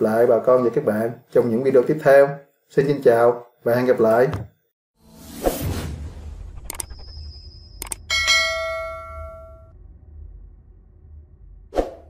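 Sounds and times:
whoosh: 5.0s - 12.0s
bell-like ding: 6.8s - 9.8s
clicks: 7.8s - 8.0s.

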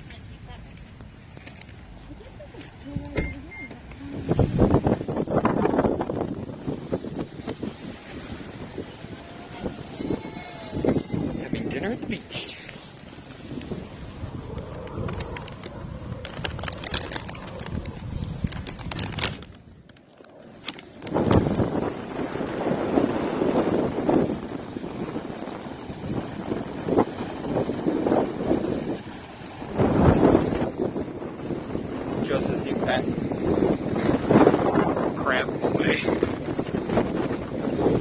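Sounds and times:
wind buffeting microphone: 0.0s - 38.0s
surf washing on rocky shore: 4.0s - 38.0s.

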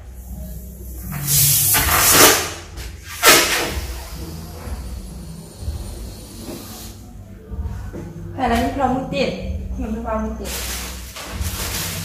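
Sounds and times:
air hissing out of balloon: 0.0s - 7.1s, 10.5s - 12.0s.

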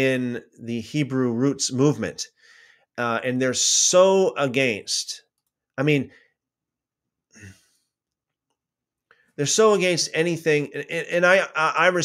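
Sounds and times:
man speaking: 0.0s - 2.4s, 3.0s - 6.2s, 9.4s - 12.0s
man exhaling: 7.3s - 7.9s.

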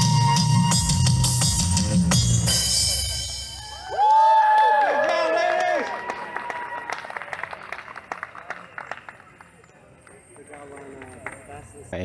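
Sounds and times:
stage music: 0.0s - 4.5s
audience clapping: 3.9s - 11.8s
crowd voices: 5.4s - 12.0s.

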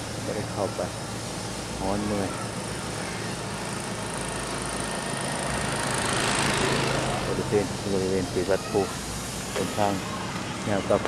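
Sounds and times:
motorbike passing on road: 3.0s - 11.0s.

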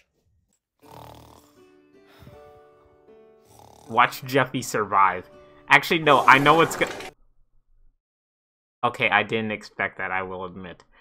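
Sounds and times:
person snoring: 0.8s - 2.4s, 3.4s - 4.3s, 6.0s - 7.0s
slow music with held notes: 0.8s - 5.8s.

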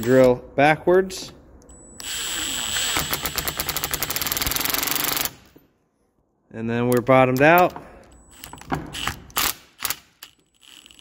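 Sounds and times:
cordless drill whirring: 2.0s - 3.3s.

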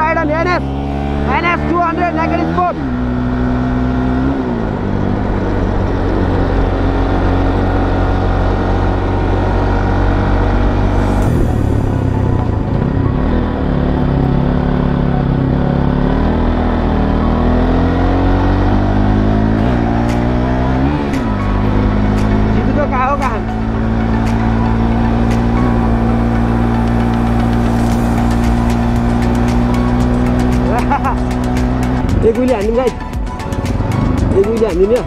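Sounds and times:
motorcycle engine accelerating: 0.0s - 35.0s.

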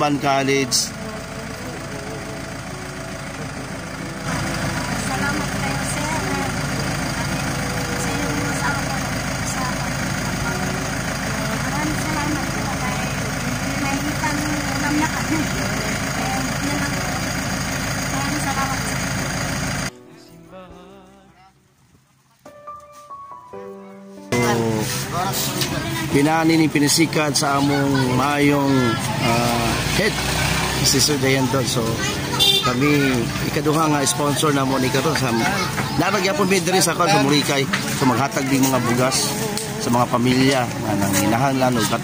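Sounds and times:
engine idling: 0.0s - 19.9s, 24.3s - 42.0s
background voices: 0.0s - 22.2s, 24.3s - 42.0s.

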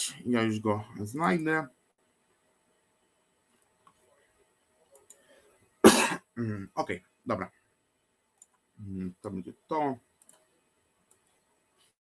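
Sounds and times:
faint clicks: 4.8s - 5.3s, 8.3s - 8.7s, 10.1s - 11.4s
man coughing: 5.8s - 6.6s.

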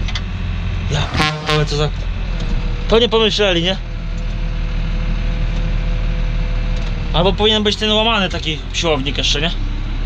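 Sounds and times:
tractor engine running: 0.0s - 10.0s.

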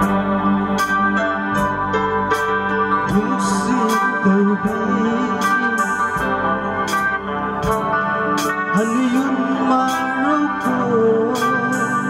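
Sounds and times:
slow live band music: 0.0s - 12.0s
man singing: 3.0s - 6.5s, 8.7s - 12.0s.

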